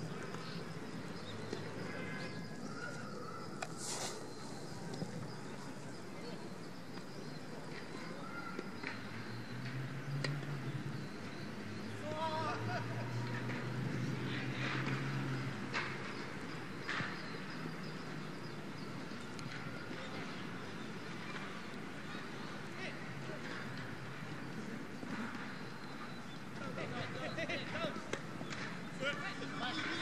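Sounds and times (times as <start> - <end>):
distant players shouting: 11.8 - 15.2.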